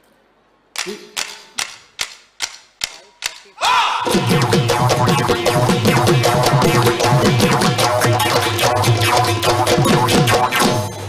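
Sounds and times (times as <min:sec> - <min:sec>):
folk dance music: 0:03.4 - 0:10.9
sharp percussion strikes: 0:04.0 - 0:11.0.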